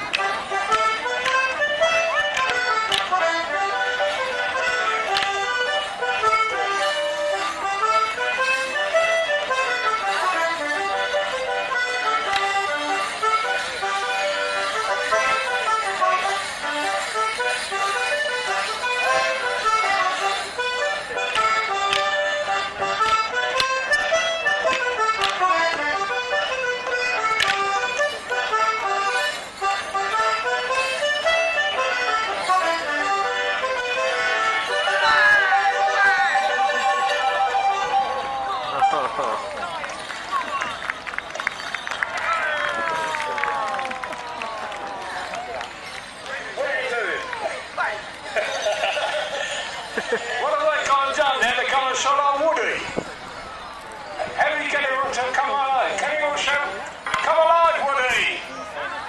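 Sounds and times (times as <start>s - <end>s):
wooden sticks clacking: 0.0s - 3.4s, 4.6s - 6.4s, 11.8s - 13.0s, 19.6s - 26.0s, 26.9s - 28.5s
accordion dance tune: 0.0s - 41.9s, 45.7s - 58.4s.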